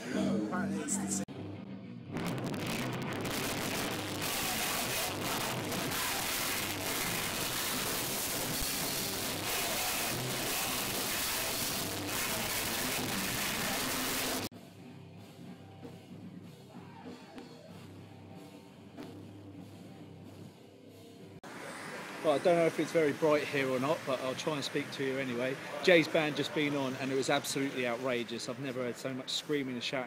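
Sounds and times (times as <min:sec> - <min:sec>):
live metal band playing: 0:02.2 - 0:14.5.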